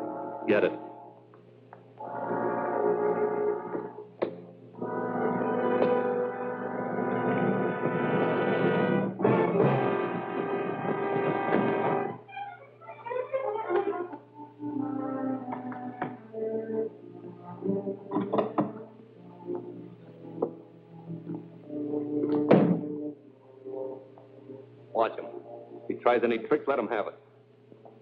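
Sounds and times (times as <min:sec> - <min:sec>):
orchestral music led by brass: 0:02.0 - 0:03.9, 0:04.8 - 0:12.2.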